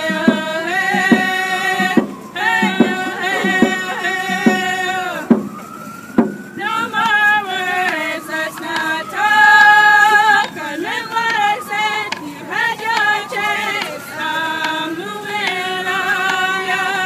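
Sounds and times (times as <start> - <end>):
group of voices singing: 0.0 - 17.0
frame hand drum strikes: 0.1 - 4.7, 5.3 - 5.6, 6.2 - 6.4.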